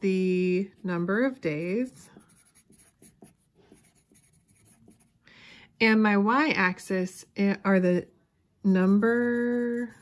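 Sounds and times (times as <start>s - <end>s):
pencil scratching on paper: 0.4s - 5.2s, 8.8s - 10.0s.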